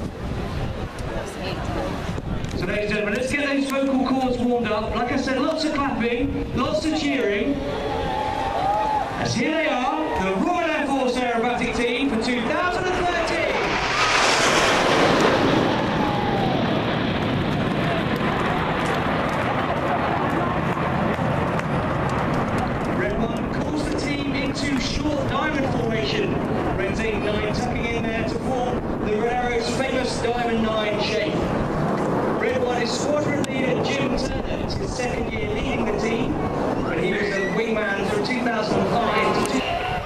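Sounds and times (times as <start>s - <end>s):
jets passing over: 4.8s - 40.0s.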